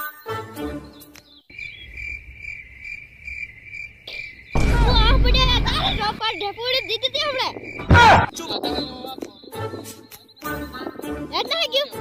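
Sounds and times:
cricket trilling: 0:01.5 - 0:10.8
loud burst of noise: 0:04.6 - 0:06.2
voice: 0:04.6 - 0:09.4, 0:11.3 - 0:12.0.

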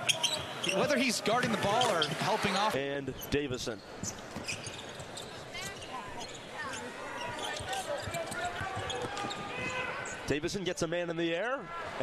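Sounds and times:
voices in crowd: 0:00.0 - 0:02.8, 0:05.3 - 0:12.0
arena crowd noise: 0:00.0 - 0:04.3, 0:04.9 - 0:12.0.

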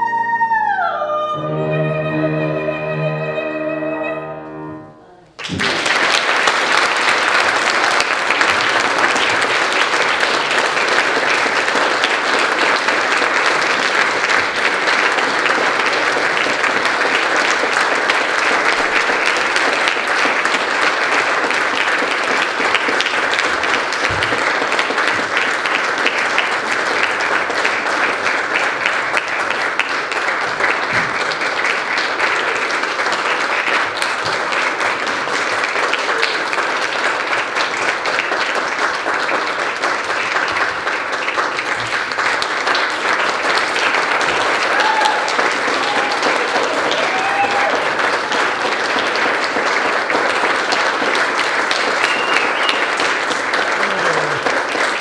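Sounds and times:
audience applause: 0:05.3 - 0:55.0.

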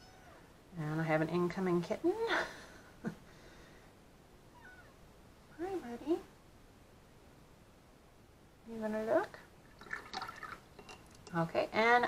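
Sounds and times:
kitten meowing: 0:00.0 - 0:00.4, 0:04.5 - 0:05.0.

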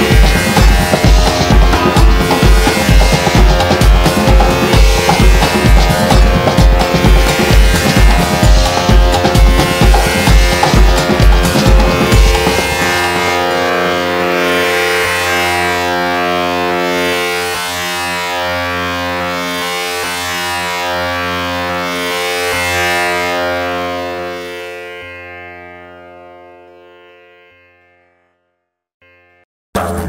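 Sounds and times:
heavy pulsing electronic beat: 0:00.0 - 0:24.4
sustained droning chord: 0:00.0 - 0:29.4.

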